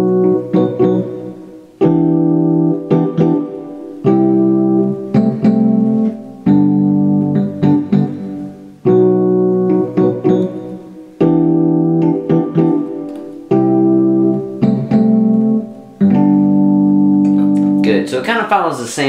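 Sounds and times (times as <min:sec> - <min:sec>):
piano chords on electronic keyboard: 0:00.0 - 0:18.9.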